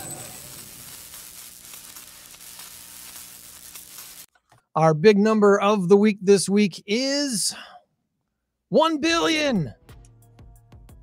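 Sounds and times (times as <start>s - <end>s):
crackling sizzling hiss: 0.0s - 4.3s.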